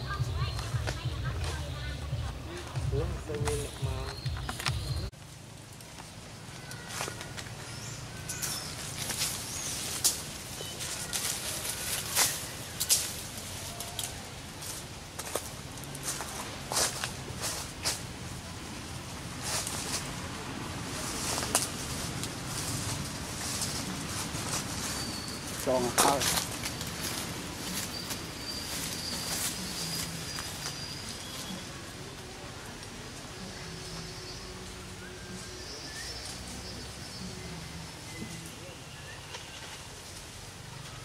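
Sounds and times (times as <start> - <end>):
dry leaves crackling and rustling: 0.0 - 41.0.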